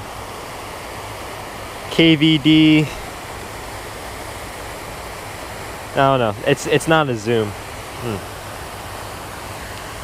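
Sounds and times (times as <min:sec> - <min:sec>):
fountain water rushing: 0:00.0 - 0:10.0.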